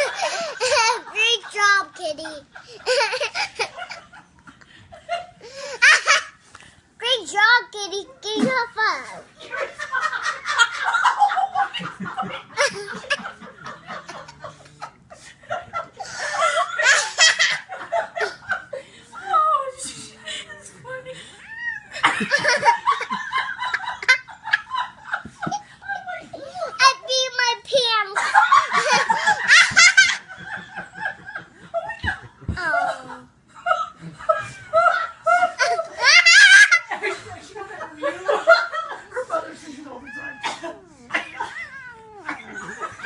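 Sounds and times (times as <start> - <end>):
toddler girl laughing: 0.0 - 4.0, 34.4 - 37.0.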